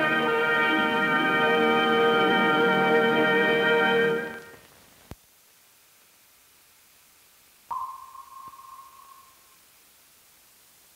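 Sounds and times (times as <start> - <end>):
faint hiss: 0.0 - 10.9
sonar ping: 7.7 - 9.6.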